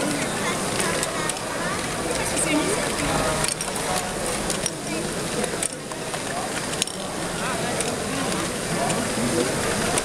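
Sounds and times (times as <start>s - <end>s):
overlapping voices chatter: 0.0s - 10.0s.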